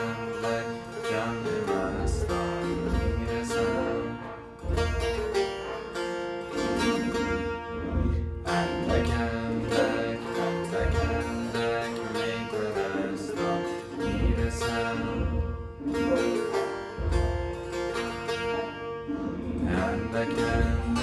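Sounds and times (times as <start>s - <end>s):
plucked long-necked lute: 0.0s - 21.0s.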